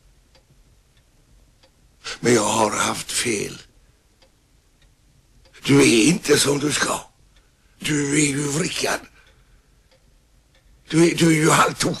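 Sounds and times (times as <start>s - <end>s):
faint ticks: 0.0s - 1.9s, 4.1s - 5.6s, 9.2s - 10.9s
person speaking: 2.0s - 3.7s, 5.5s - 7.1s, 7.8s - 9.2s, 10.9s - 12.0s.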